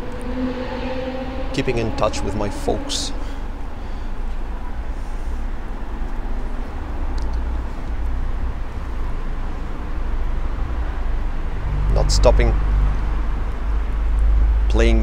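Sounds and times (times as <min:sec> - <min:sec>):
city street traffic rumble: 0:00.0 - 0:15.0.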